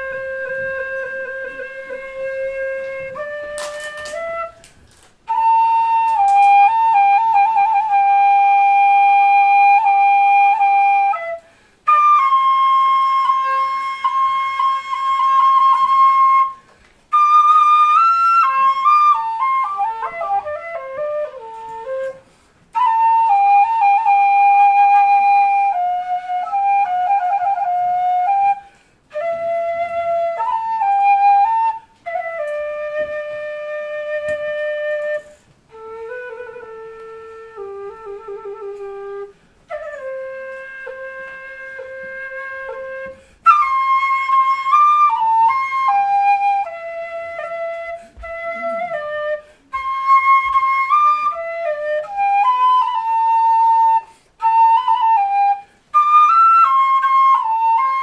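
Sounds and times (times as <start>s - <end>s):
bamboo flute melody: 0.0s - 58.0s.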